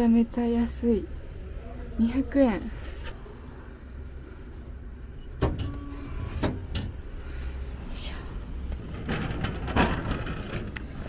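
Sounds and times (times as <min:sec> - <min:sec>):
vending machine mechanical hum: 0:00.0 - 0:11.0
vending machine clunk: 0:05.2 - 0:07.1.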